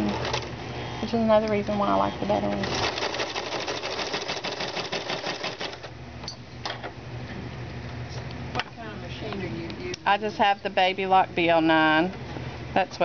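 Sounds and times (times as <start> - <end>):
sewing machine clattering: 2.6 - 5.9.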